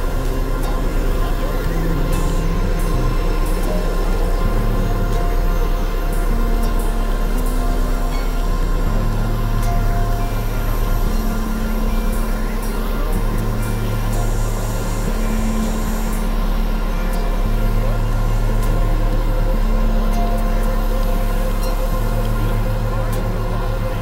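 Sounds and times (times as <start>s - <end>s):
synthesizer drone music: 0.0s - 24.0s.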